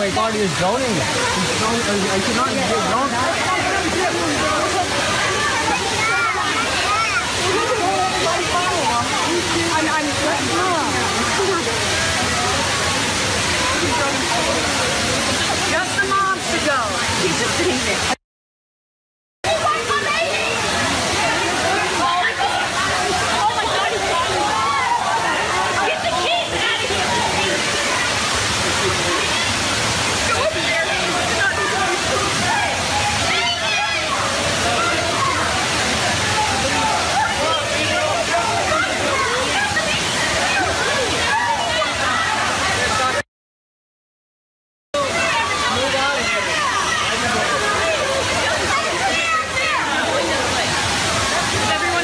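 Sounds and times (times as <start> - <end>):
water falling: 0.0 - 18.2, 19.5 - 43.2, 45.0 - 52.0
people calling out: 19.5 - 43.2.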